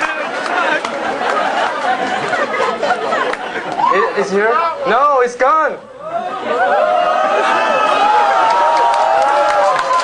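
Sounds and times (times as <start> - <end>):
audience chatter: 0.0 - 8.3.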